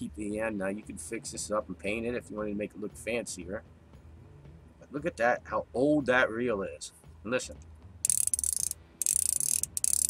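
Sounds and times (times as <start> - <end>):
fishing reel ratcheting clicks: 8.0 - 10.0.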